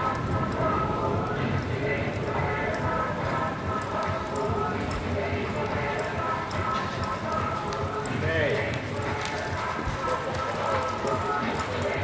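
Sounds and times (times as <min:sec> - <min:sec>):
people talking: 0:08.1 - 0:10.3.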